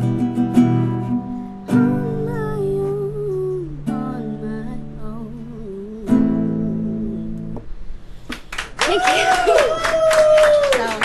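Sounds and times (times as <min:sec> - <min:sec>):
acoustic guitar chord strummed: 0:00.0 - 0:07.9
girl singing a long note: 0:01.7 - 0:07.6.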